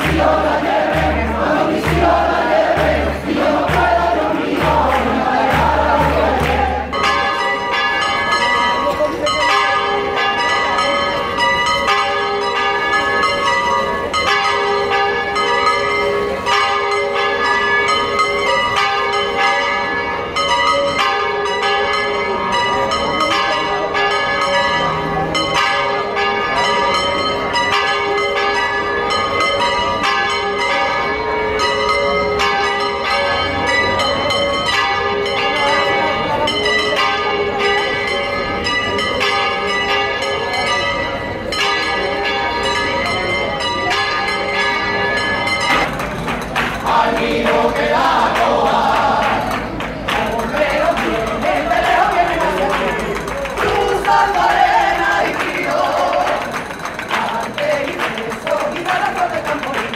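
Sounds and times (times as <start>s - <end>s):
church bells ringing: 0.0s - 59.9s.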